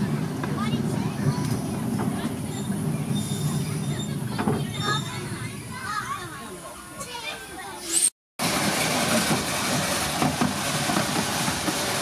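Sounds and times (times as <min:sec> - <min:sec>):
train rumbling on track: 0:00.0 - 0:06.0, 0:08.4 - 0:12.0.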